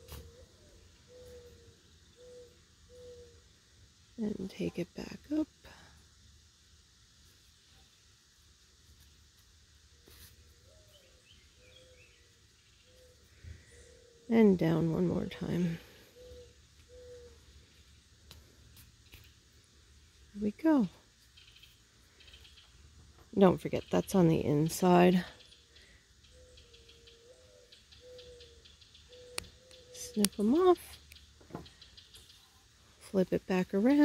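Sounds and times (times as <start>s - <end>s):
faint background hum: 0.0s - 34.0s.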